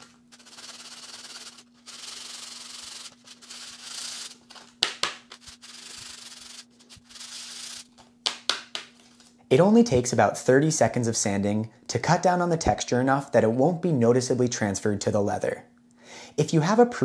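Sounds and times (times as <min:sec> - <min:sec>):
plastic rubbing on sandpaper: 0:00.0 - 0:04.6, 0:05.3 - 0:07.9.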